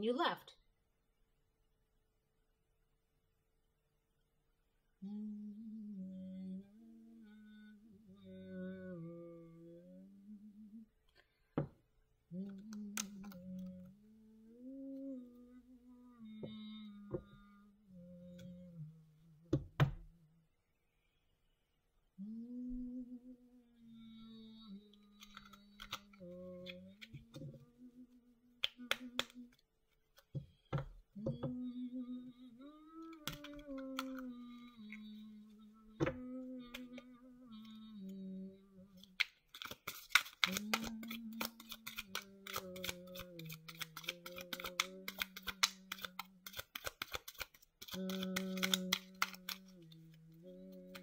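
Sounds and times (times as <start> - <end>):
person humming slow tune: 5.0 - 11.1, 12.3 - 20.6, 22.2 - 29.6, 30.6 - 51.0.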